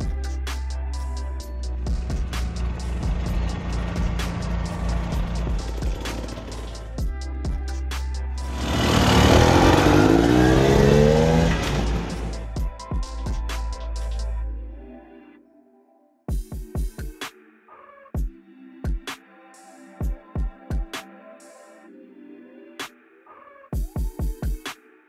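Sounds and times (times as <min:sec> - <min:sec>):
background music with beat: 0:00.0 - 0:14.6, 0:16.3 - 0:22.0, 0:22.7 - 0:25.0
dirt bike engine revving: 0:08.5 - 0:12.4.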